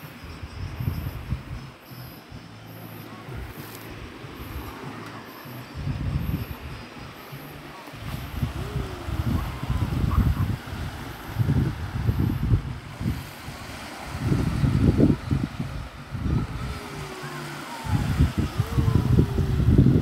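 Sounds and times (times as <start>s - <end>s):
wind buffeting microphone: 0.0s - 20.0s
water washing on shore: 2.6s - 20.0s.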